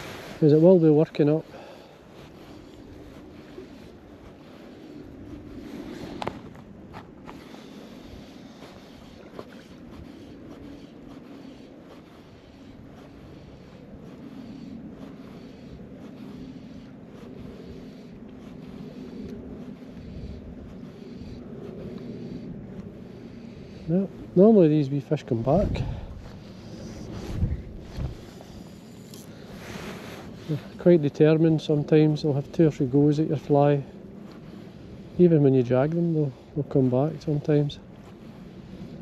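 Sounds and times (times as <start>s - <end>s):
wind on microphone: 0.0s - 39.0s.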